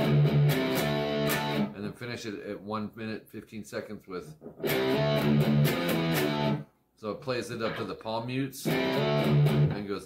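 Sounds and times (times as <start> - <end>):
electric guitar notes and chords: 0.0 - 1.8, 4.6 - 6.6, 8.6 - 9.8.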